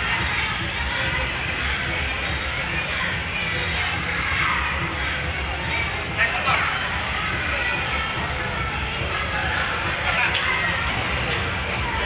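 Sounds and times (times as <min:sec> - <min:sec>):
distant chatter: 0:00.0 - 0:12.0.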